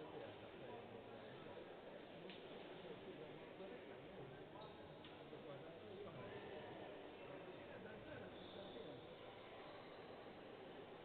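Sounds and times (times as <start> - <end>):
faint distant voices talking: 0.0 - 11.0.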